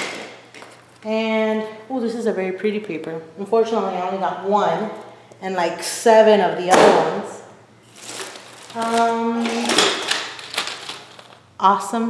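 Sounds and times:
plastic wrapping crinkling: 0:07.8 - 0:11.5.

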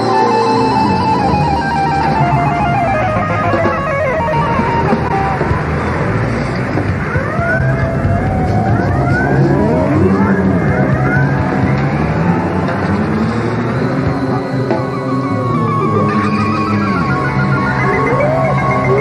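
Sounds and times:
gliding synth tones: 0:00.0 - 0:19.0
synthesizer melody: 0:00.0 - 0:19.0.

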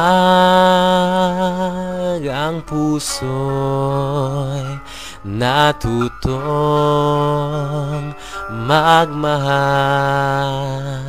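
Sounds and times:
man singing a slow ballad: 0:00.0 - 0:11.0.

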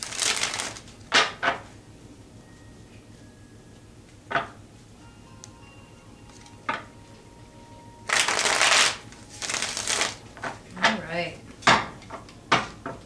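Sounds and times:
cards being shuffled: 0:00.0 - 0:01.0, 0:08.1 - 0:10.5.

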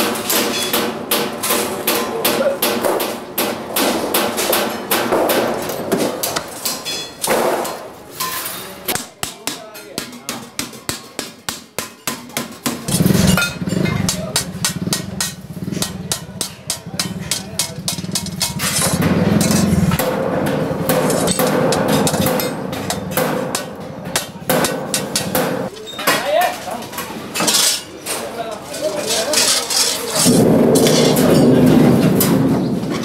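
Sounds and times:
metal scraping and clinking on steel: 0:05.6 - 0:08.9, 0:12.9 - 0:33.0
hand shears snipping metal sheet: 0:08.9 - 0:25.7.

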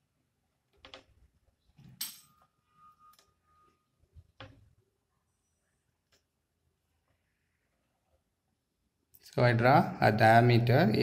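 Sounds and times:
faint ringing tone: 0:02.0 - 0:06.0.

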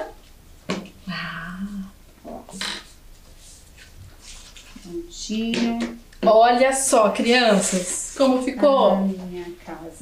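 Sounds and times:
woman humming: 0:01.0 - 0:02.6
paper handling: 0:03.3 - 0:04.9.

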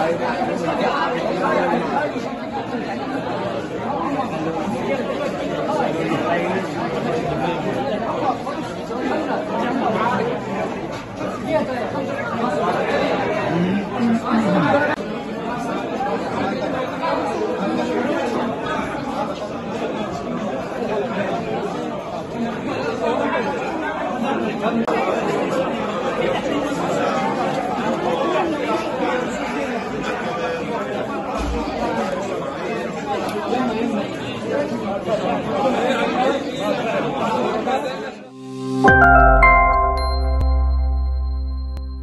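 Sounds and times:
crowd chatter: 0:00.0 - 0:42.0.

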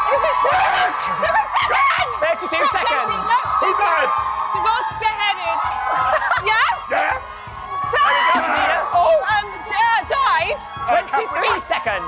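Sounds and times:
people laughing: 0:00.0 - 0:01.6, 0:05.8 - 0:06.9
people shouting: 0:00.0 - 0:12.0.

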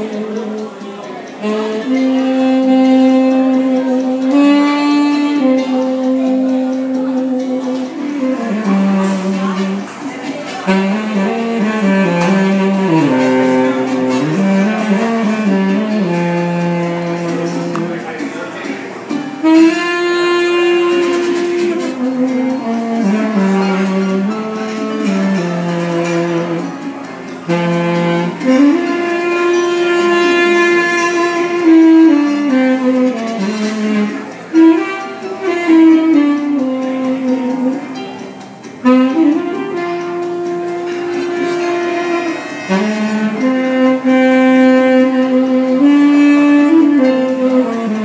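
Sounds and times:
tenor saxophone long note: 0:00.0 - 0:48.0.

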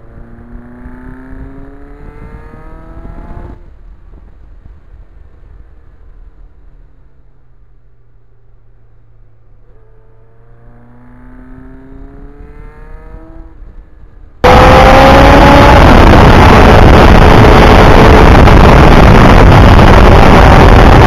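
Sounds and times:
motorcycle engine accelerating: 0:00.0 - 0:04.8, 0:09.0 - 0:21.0
wind rushing on microphone: 0:01.4 - 0:06.3, 0:13.0 - 0:21.0.

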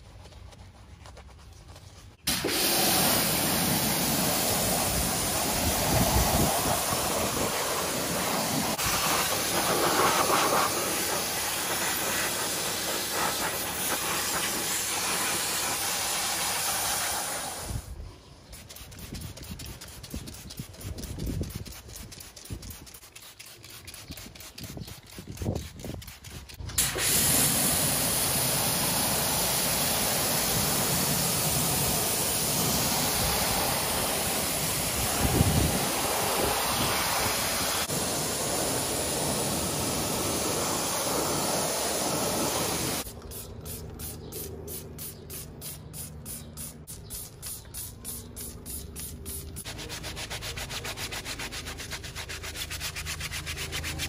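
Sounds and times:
brush scrubbing tyre: 0:00.0 - 0:17.4, 0:18.5 - 0:27.4, 0:28.7 - 0:54.0
high-pressure water spray hiss: 0:02.3 - 0:17.9, 0:26.8 - 0:54.0.

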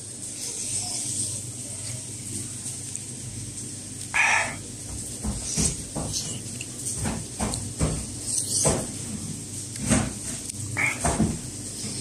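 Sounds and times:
person chewing food: 0:03.8 - 0:12.0.

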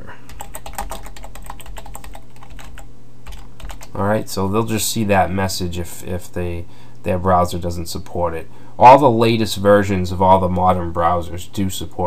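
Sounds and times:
low steady hum: 0:00.0 - 0:12.0
typing on computer keyboard: 0:00.3 - 0:04.0.

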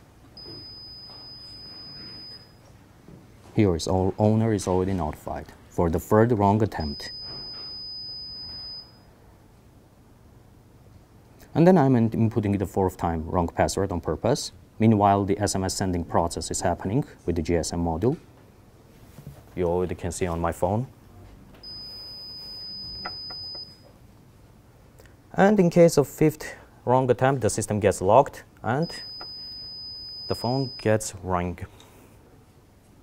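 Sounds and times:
high-pitched electronic beep: 0:06.8 - 0:09.0, 0:21.6 - 0:23.8
high-pitched keypad beep: 0:21.6 - 0:23.8.

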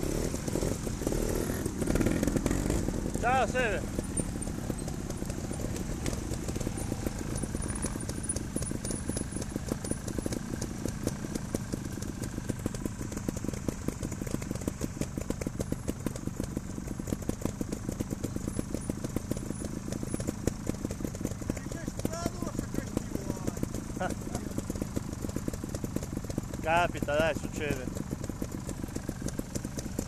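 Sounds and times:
motorcycle engine idling: 0:00.0 - 0:30.0.

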